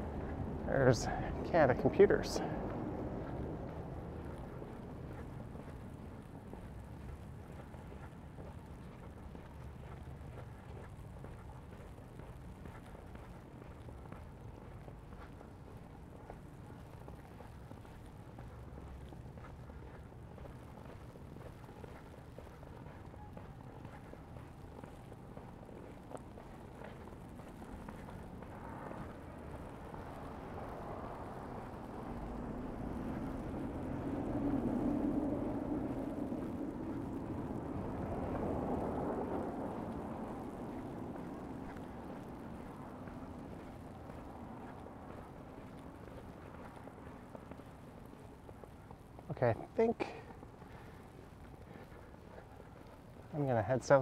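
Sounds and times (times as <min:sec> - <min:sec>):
vehicle rumbling past: 0:00.0 - 0:07.3, 0:22.4 - 0:49.4.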